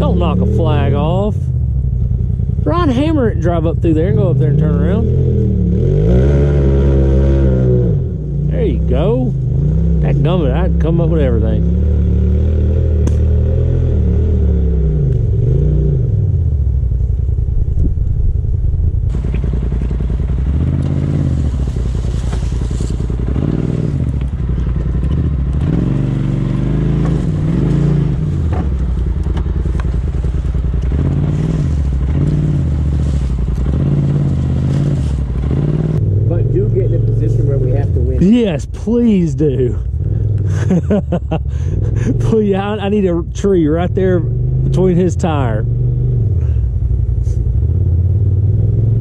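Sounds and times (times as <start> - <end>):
utility vehicle engine revving: 0.0 - 49.0
vehicle rattling: 0.0 - 49.0.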